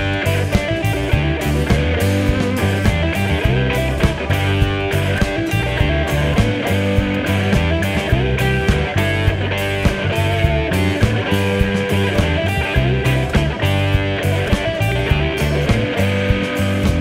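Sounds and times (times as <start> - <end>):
bass guitar: 0.0 - 17.0
drum beat: 0.0 - 17.0
strummed guitar: 0.0 - 17.0.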